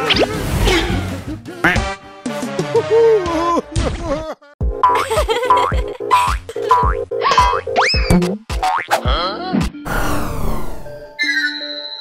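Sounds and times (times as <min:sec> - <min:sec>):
cartoon music: 0:04.6 - 0:10.2, 0:11.1 - 0:12.0.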